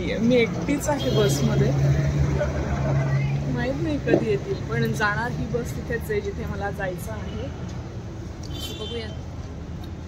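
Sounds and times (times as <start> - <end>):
voices: 0.0 - 7.8.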